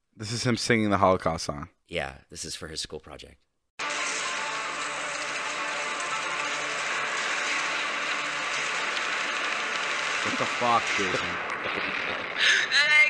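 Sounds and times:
hissy instrumental chord: 0:03.8 - 0:12.3.

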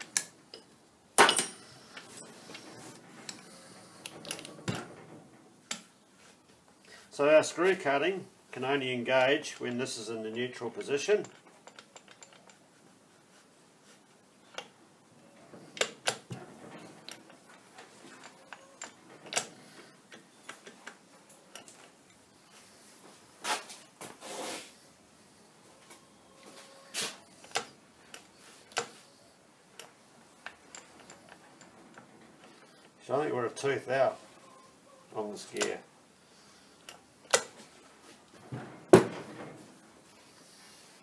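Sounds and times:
metallic clicks and knocks: 0:00.0 - 0:05.9, 0:10.8 - 0:12.6, 0:15.6 - 0:22.2, 0:29.7 - 0:32.9, 0:36.8 - 0:37.7
gearbox levers moved by hand: 0:15.7 - 0:22.2, 0:27.3 - 0:29.0, 0:36.8 - 0:37.7.

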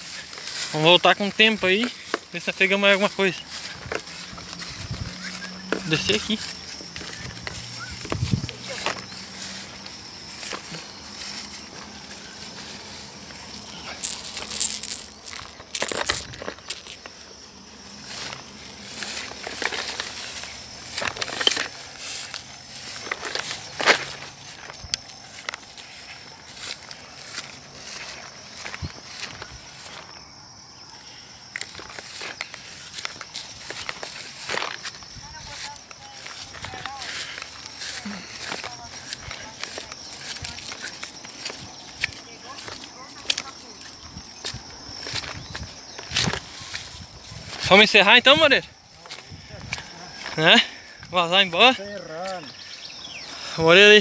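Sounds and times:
footsteps through tall grass: 0:00.0 - 0:54.0
steady outdoor hiss: 0:00.0 - 0:54.0.

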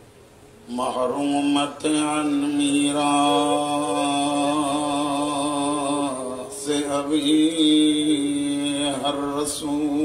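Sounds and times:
man chanting: 0:00.7 - 0:10.0.

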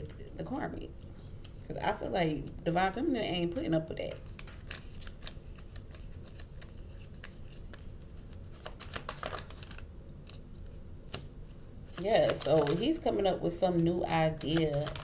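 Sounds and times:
low steady hum: 0:00.0 - 0:15.0
cards being shuffled: 0:04.1 - 0:11.3, 0:11.9 - 0:13.2, 0:14.3 - 0:15.0.

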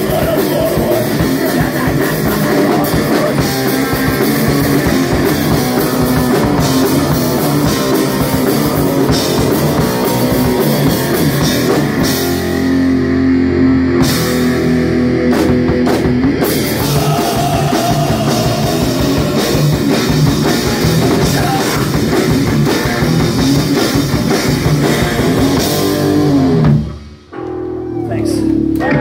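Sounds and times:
heavy rock band playing: 0:00.0 - 0:29.0.

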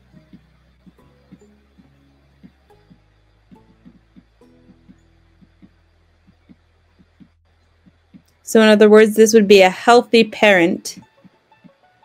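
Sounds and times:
low hum: 0:00.0 - 0:09.0.

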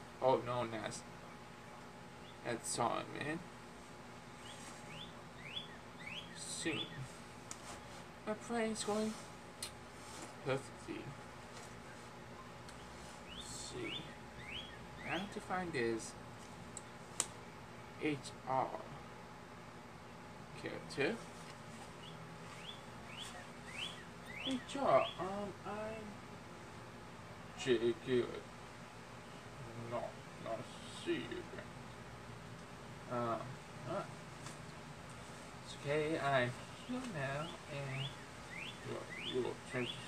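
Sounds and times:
bird chirping: 0:01.2 - 0:02.6, 0:04.3 - 0:07.2, 0:11.8 - 0:15.5, 0:22.0 - 0:25.5, 0:35.8 - 0:40.0.

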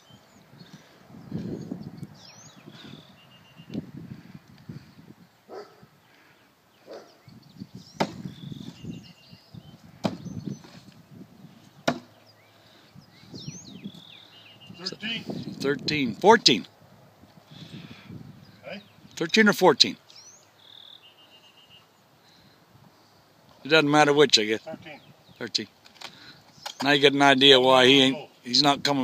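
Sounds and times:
knives striking wooden targets: 0:08.0 - 0:08.2, 0:11.8 - 0:12.1.

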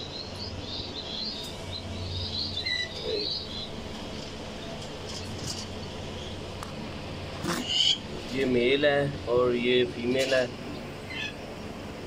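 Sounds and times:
small birds chirping: 0:00.0 - 0:11.9.

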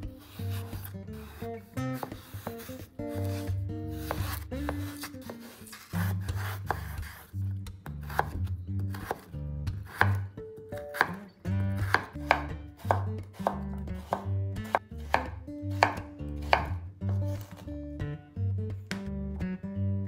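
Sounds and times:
background music: 0:00.0 - 0:20.0
knife chopping on wooden board: 0:00.2 - 0:11.2, 0:11.8 - 0:17.6.

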